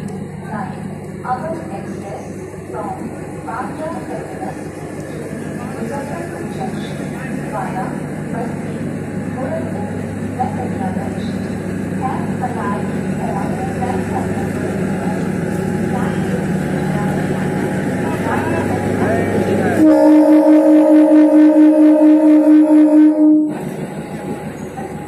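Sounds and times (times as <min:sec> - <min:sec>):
train diesel engine drone: 0:00.0 - 0:25.0
people's voices: 0:00.4 - 0:20.3.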